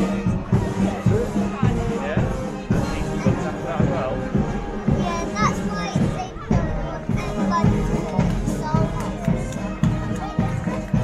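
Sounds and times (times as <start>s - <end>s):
bass drum beating: 0.0s - 11.0s
marching band playing: 0.0s - 11.0s
voices including a child's: 0.2s - 11.0s.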